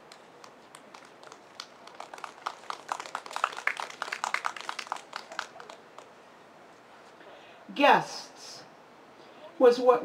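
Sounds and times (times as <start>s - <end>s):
audience clapping: 0.1s - 6.1s.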